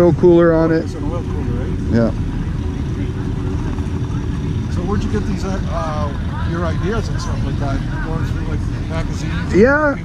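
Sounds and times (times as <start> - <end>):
vehicle engine rumble: 0.0 - 10.0.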